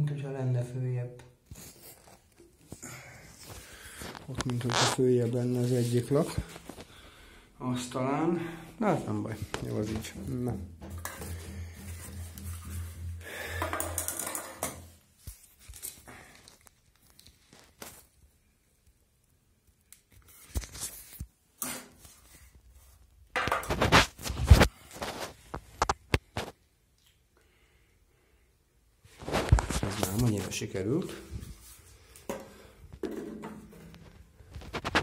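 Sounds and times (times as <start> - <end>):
plastic level clacking on tiles: 13.6 - 14.8.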